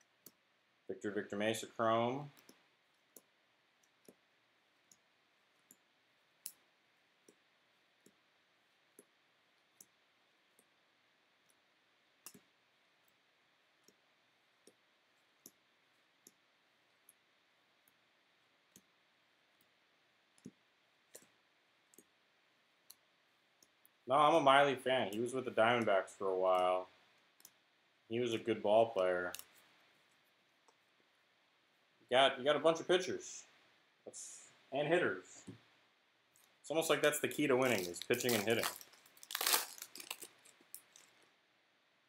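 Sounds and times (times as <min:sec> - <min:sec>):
cards flipping clicks: 0:37.6 - 0:41.1.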